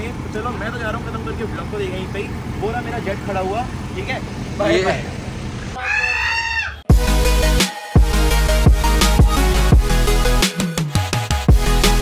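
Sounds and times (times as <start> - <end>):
man talking: 0.0 - 5.2
low vehicle rumble: 0.0 - 10.4.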